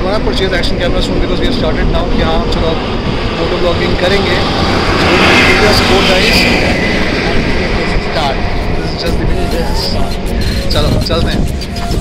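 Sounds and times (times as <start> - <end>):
man talking: 0.0 - 11.6
low rumble of vehicle noise: 0.0 - 12.0.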